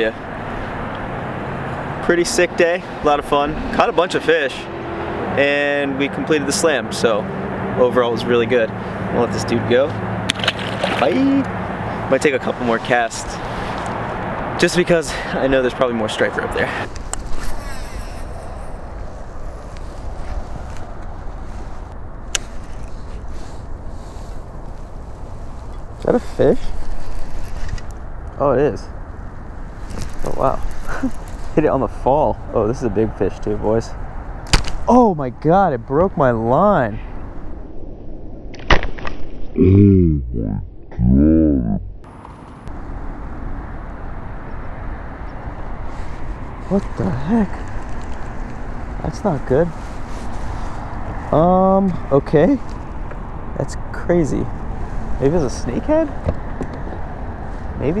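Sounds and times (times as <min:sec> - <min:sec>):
rushing outdoor noise with rumble: 0:00.0 - 0:58.0.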